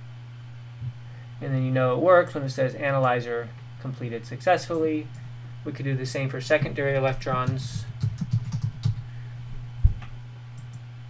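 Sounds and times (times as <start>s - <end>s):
steady low hum: 0.0s - 11.0s
keyboard typing: 7.1s - 9.0s.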